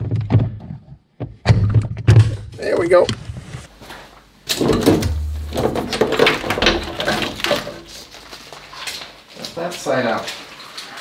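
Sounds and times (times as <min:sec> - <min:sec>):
wiring harness rustling and clattering: 0:03.8 - 0:11.0.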